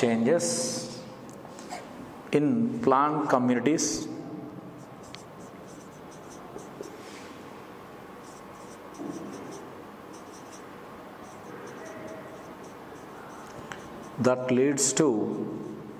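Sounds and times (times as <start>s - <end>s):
marker writing on whiteboard: 4.8s - 7.2s, 8.2s - 15.9s.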